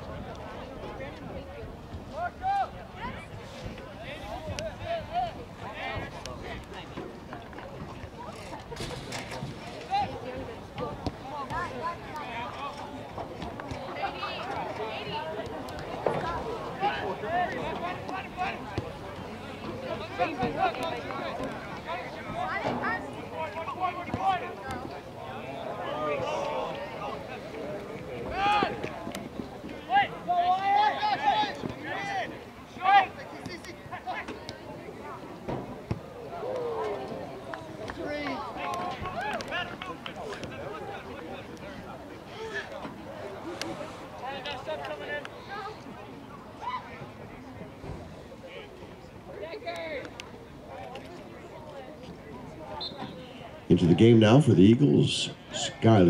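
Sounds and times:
voices shouting outdoors: 0:13.9 - 0:47.6.

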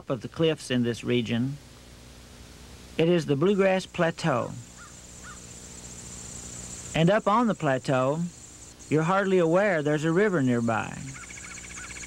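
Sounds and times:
insects chirring: 0:02.5 - 0:12.0.

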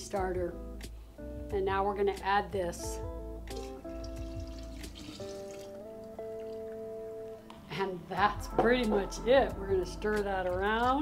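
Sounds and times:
background guitar music: 0:00.0 - 0:11.0
liquid pouring into glass jar: 0:03.5 - 0:07.0.

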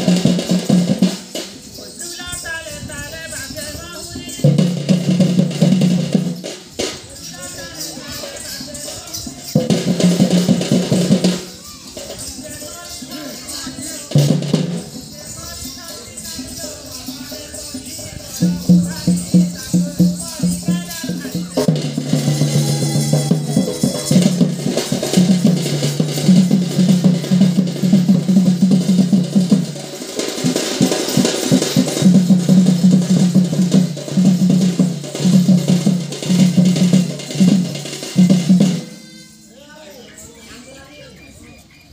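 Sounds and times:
folk drum beaten rapidly: 0:00.0 - 0:39.4.

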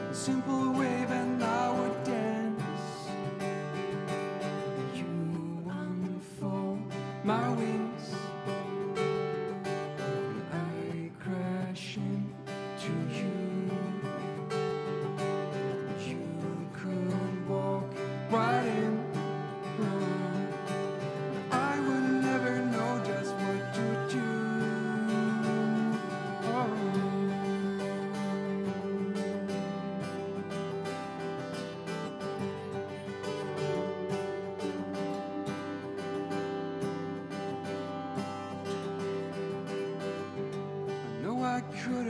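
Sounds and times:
acoustic guitar playing slow song: 0:00.0 - 0:42.0.

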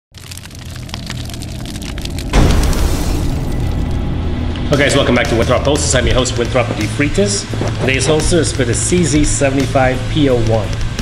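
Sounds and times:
small crackles: 0:00.1 - 0:04.0
low rumble: 0:00.2 - 0:10.1.

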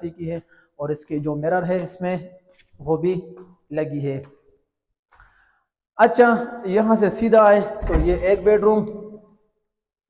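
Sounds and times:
man speaking: 0:00.0 - 0:02.2, 0:06.0 - 0:09.0
faint short breath: 0:05.1 - 0:05.7.

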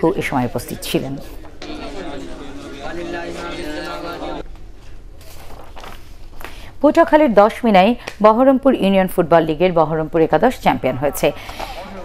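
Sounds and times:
woman speaking: 0:00.0 - 0:01.4, 0:06.8 - 0:11.5
paper rustling and shuffling: 0:04.6 - 0:06.5.

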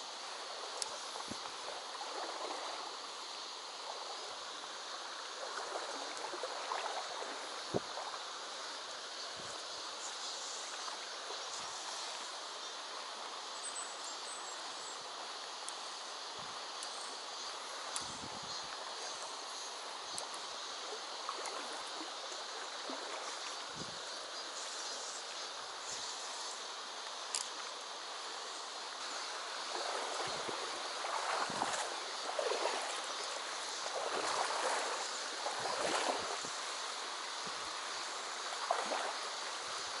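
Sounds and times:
faint clicks: 0:00.8 - 0:01.5, 0:16.8 - 0:17.0, 0:17.9 - 0:18.1, 0:20.1 - 0:20.5, 0:27.0 - 0:27.8
river rushing over stones: 0:26.6 - 0:40.0.

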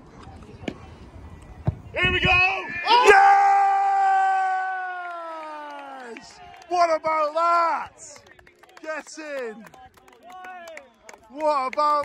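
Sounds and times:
ball kick thud: 0:01.6 - 0:02.4.

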